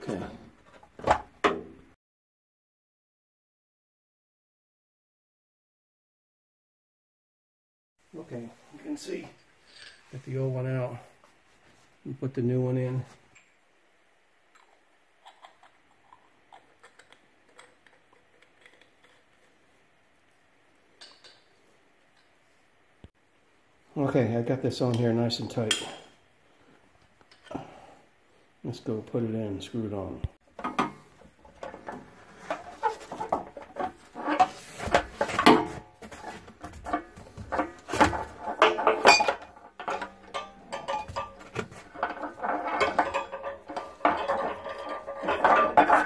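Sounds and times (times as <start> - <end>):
metal rod scraping and knocking: 30.6 - 46.0
metallic squeaks and rings: 38.8 - 46.0.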